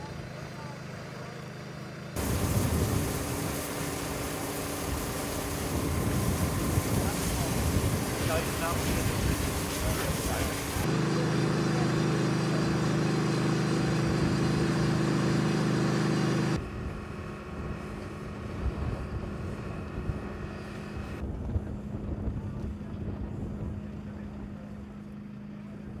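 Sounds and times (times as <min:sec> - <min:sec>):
low engine drone: 0:02.0 - 0:26.0.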